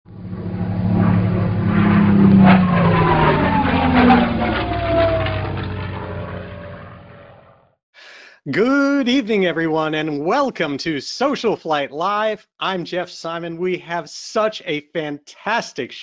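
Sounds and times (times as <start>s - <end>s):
propeller airplane flying past: 0.1s - 7.8s.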